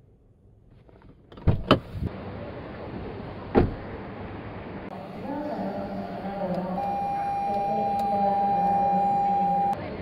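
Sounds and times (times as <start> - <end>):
steady electronic beep: 6.0 - 9.8.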